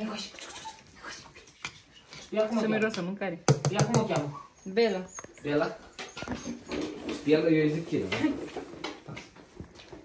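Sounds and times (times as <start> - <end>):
puppy whimpering: 0.0 - 1.2, 4.3 - 7.0.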